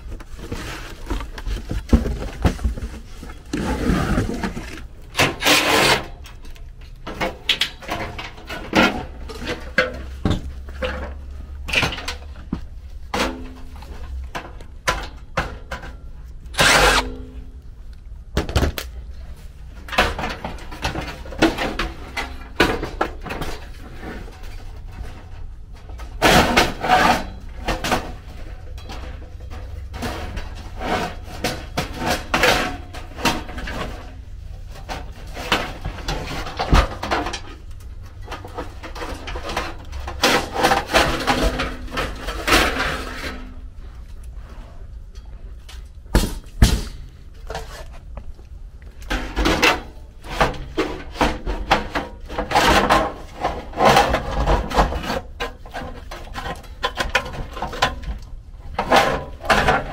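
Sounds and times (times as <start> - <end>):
knocks and clatters of handling: 0.0 - 59.9
squeaky scrape on sheet metal: 5.2 - 6.2, 16.6 - 17.2.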